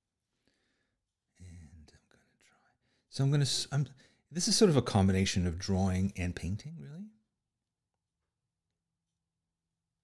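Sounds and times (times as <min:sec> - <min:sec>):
man whispering: 0:01.3 - 0:03.9.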